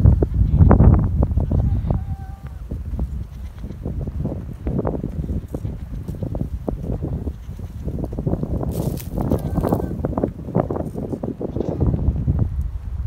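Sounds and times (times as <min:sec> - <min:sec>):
wind rumbling on microphone: 0:00.0 - 0:13.0
footsteps crunching through dry grass: 0:02.4 - 0:11.6.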